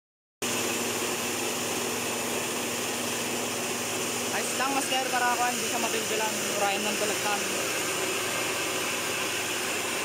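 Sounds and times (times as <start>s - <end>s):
rice mill motor and blower: 0.4s - 10.0s.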